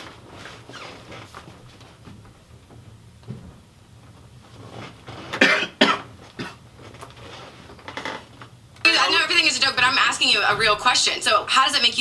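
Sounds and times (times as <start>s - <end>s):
man coughing: 5.4s - 6.6s.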